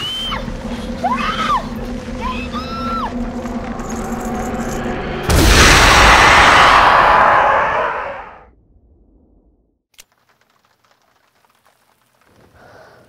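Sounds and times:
faint low rumble: 0.0 - 9.8
loud boom: 3.1 - 9.6.

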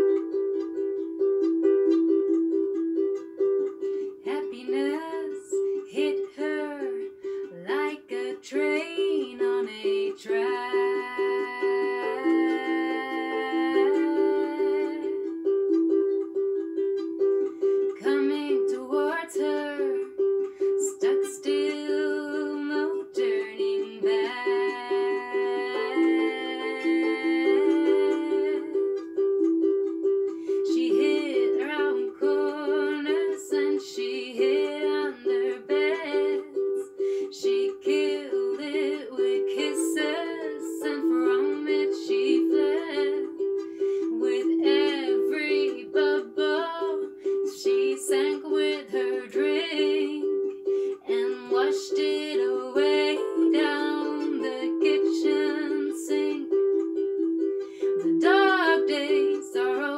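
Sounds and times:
classical guitar: 0.0 - 4.3, 5.0 - 20.8, 24.0 - 33.9
harp: 0.0 - 59.9
woman singing: 4.1 - 15.4, 17.9 - 29.1, 30.5 - 59.9.

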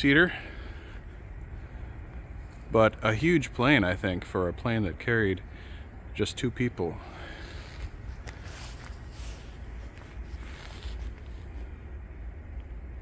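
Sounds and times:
steady low hum: 0.0 - 13.0
faint footsteps: 0.4 - 3.1, 7.0 - 11.8.

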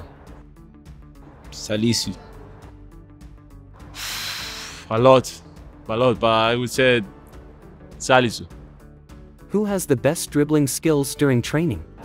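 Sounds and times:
soft background music: 0.0 - 12.0
man blowing out breath: 3.8 - 4.9.

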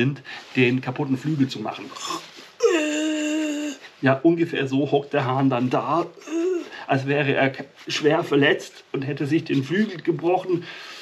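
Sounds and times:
man making wordless whine: 1.8 - 3.9, 5.9 - 7.1, 9.4 - 10.6.

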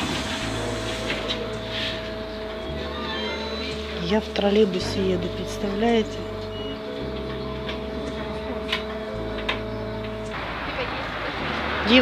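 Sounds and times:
background music: 0.0 - 12.0
street noise: 0.0 - 12.0
trolleybus running noise with whine: 0.0 - 12.0.

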